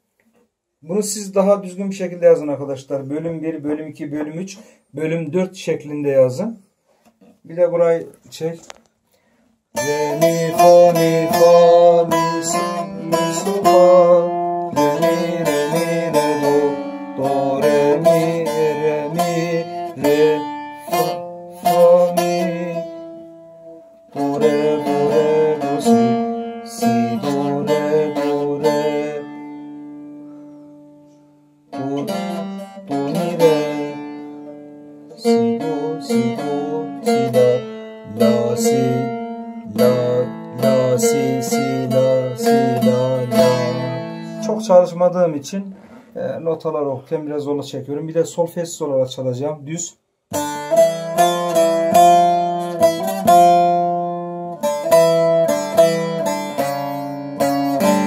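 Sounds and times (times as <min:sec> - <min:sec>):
solo lute melody: 0:02.0 - 0:05.4, 0:09.8 - 0:47.8, 0:50.3 - 0:58.0.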